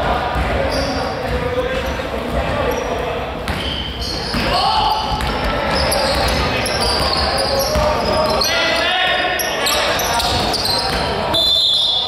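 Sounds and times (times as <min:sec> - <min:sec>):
players' voices echoing: 0:00.0 - 0:12.0
basketball bouncing on court: 0:00.1 - 0:02.8, 0:03.4 - 0:08.4, 0:10.2 - 0:11.2.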